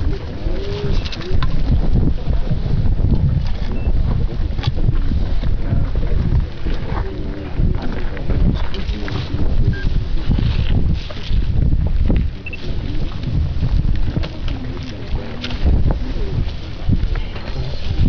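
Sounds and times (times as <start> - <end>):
faint voices: 0.0 - 10.9, 11.8 - 18.0
wind buffeting microphone: 0.0 - 18.0.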